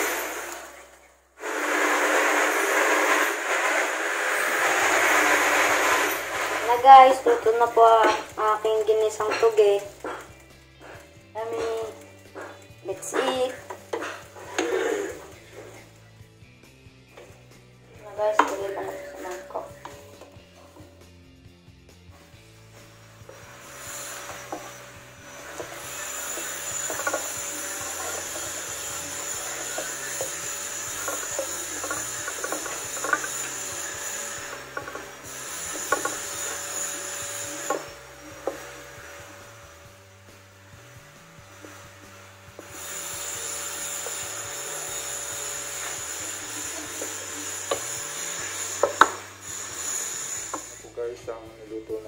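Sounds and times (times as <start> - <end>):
spatula scraping frying pan: 1.4 - 16.0, 22.7 - 39.1.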